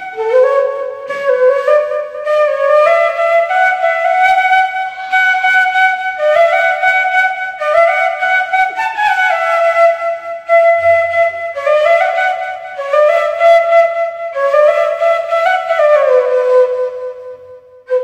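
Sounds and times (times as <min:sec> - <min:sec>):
bamboo flute melody: 0:00.0 - 0:18.0.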